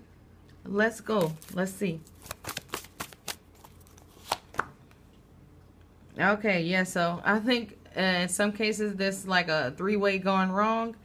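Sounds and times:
cards snapping while shuffled: 1.2s - 4.8s.

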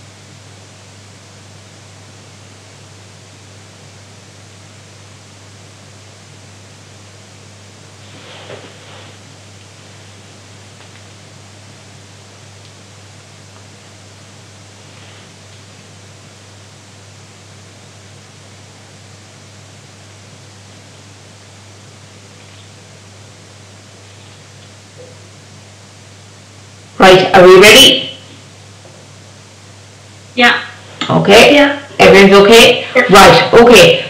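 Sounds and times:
faint constant hum: 0.0s - 34.0s
steady low hiss: 0.0s - 34.0s.

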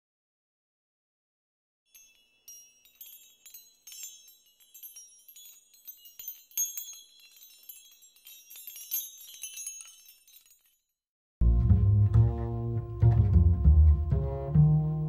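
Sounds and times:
high-pitched tinkling chimes: 1.9s - 11.0s.

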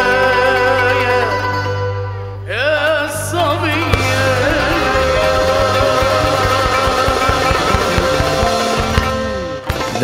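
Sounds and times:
band accompaniment: 0.0s - 10.0s
oud plucked notes: 0.0s - 10.0s.

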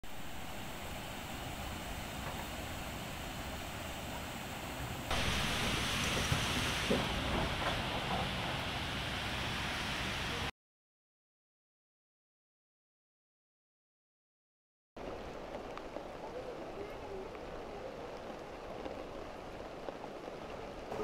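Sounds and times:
steady rushing outdoor noise: 0.0s - 10.5s, 15.0s - 21.0s.

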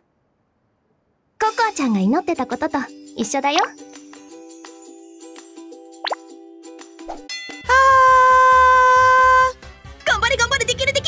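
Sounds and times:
soft background music: 1.4s - 7.7s
rising pop sound effect: 6.0s - 6.3s.

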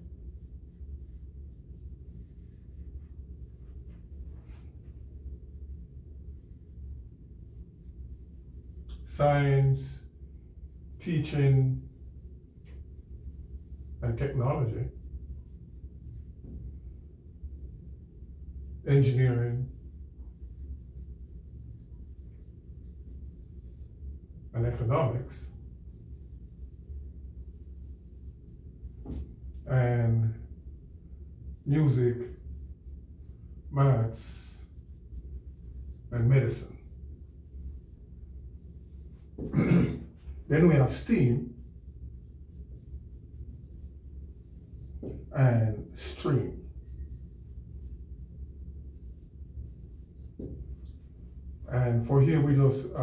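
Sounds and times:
low room hum: 0.0s - 53.0s
marker writing on whiteboard: 0.3s - 5.1s, 7.5s - 9.2s, 11.0s - 16.8s, 18.9s - 29.6s, 31.6s - 51.4s.

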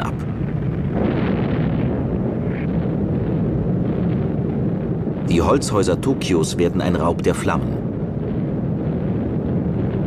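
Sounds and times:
rumble of explosions: 0.0s - 10.0s.

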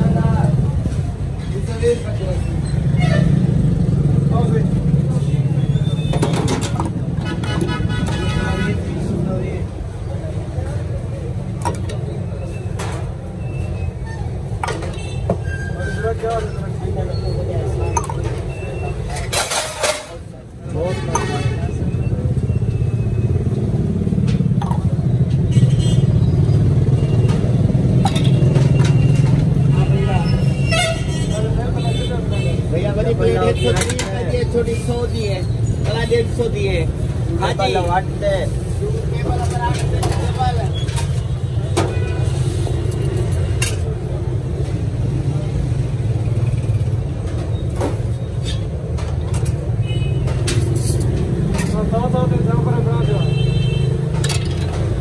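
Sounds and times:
street traffic rumble: 0.0s - 55.0s.

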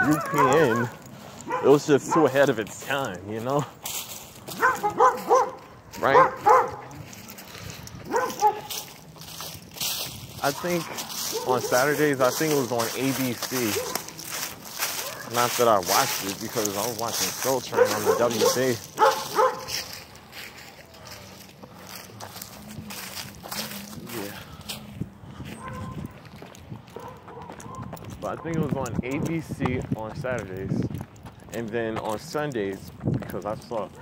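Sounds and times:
dog barking: 0.0s - 2.5s, 4.5s - 7.1s, 8.0s - 8.9s, 10.8s - 12.0s, 13.6s - 14.2s, 14.9s - 15.5s, 17.5s - 20.0s, 25.6s - 26.1s, 26.9s - 28.5s
footsteps through grass and leaves: 0.0s - 28.4s.

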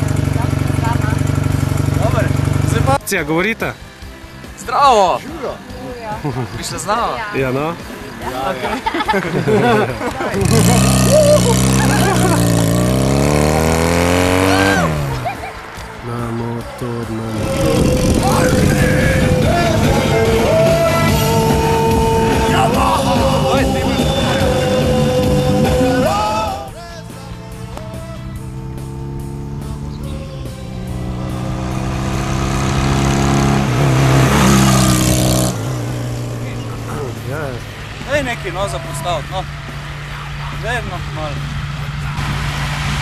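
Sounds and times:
motorcycle engine approaching: 0.0s - 43.0s
rock song with band: 14.2s - 33.1s
voice holding long sung note: 16.0s - 28.4s.

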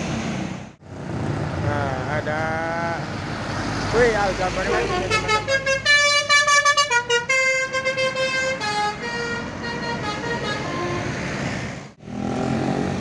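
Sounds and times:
road traffic noise: 0.0s - 13.0s
multi-tone bus air horn tune: 4.8s - 11.2s.

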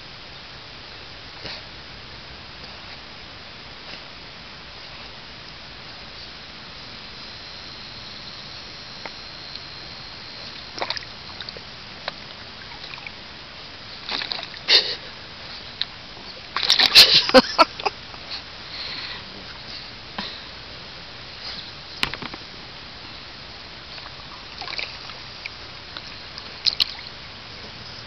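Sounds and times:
water splashing in a pool: 10.4s - 18.3s, 22.0s - 27.8s.

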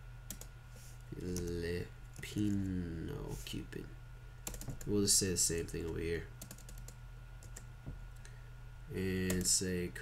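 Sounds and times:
low steady hum: 0.0s - 10.0s
keyboard and mouse clicks: 4.5s - 4.9s.

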